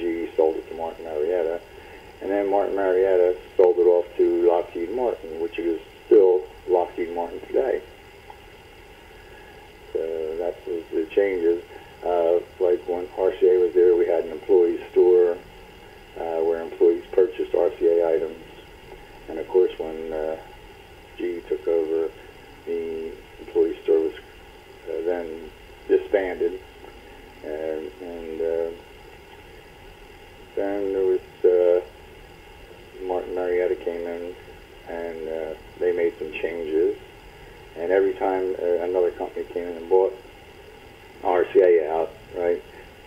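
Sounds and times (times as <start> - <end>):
person talking: 0.0 - 1.6, 2.2 - 7.8, 10.0 - 15.4, 16.2 - 18.6, 19.3 - 20.4, 21.2 - 22.1, 24.9 - 26.6, 30.6 - 31.8, 33.0 - 37.0, 37.8 - 40.2, 41.2 - 42.7.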